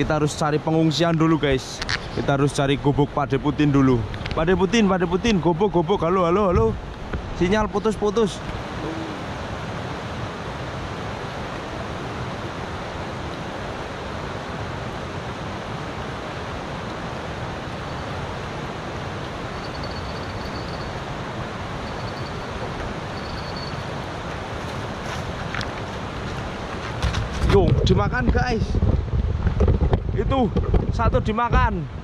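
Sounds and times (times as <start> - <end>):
river rushing over rocks: 0.0 - 27.4
wind buffeting microphone: 1.5 - 10.6, 23.8 - 32.0.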